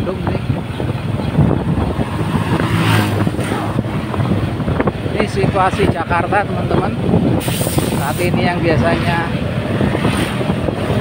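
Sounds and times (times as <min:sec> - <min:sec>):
road noise: 0:00.0 - 0:11.0
vehicle engine: 0:00.0 - 0:11.0.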